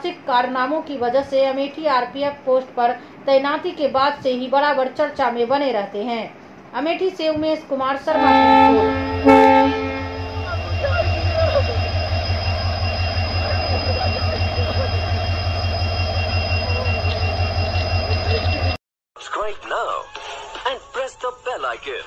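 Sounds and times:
train horn blasts: 8.1s - 14.0s
train running rumble: 8.1s - 18.8s
faint squeals: 8.3s - 18.8s.

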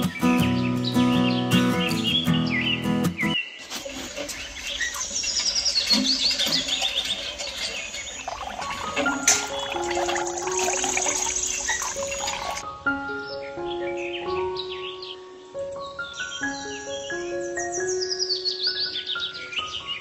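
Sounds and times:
birds chirping: 0.0s - 20.0s
water pouring into steel pot: 3.6s - 12.6s
background music: 8.6s - 20.0s.

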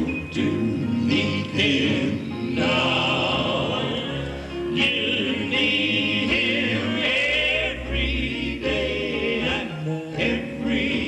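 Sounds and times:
male vocal quartet singing in harmony: 0.0s - 11.0s.

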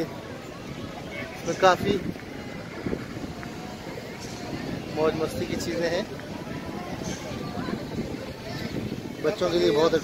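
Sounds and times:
faint voices of people: 0.0s - 10.0s.

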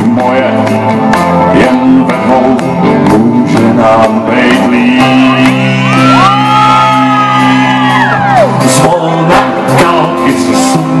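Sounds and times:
live pop-rock band: 0.0s - 11.0s
high held shout: 5.8s - 8.6s.

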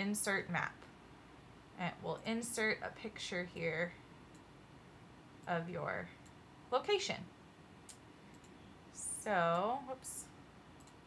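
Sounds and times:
computer mouse click: 7.8s - 8.6s, 10.8s - 11.0s.

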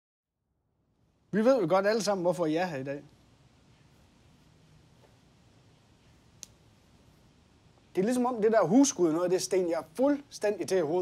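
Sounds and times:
man speaking: 1.3s - 3.1s, 7.9s - 11.0s.

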